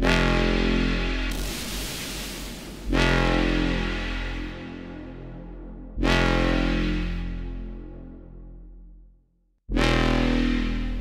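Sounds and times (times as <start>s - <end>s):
distorted bass synth notes: 0.0s - 9.0s, 9.7s - 11.0s.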